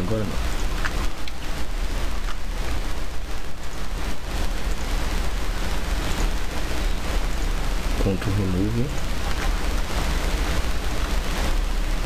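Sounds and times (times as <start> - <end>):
low hum: 0.0 - 12.0
steady hiss: 0.0 - 12.0.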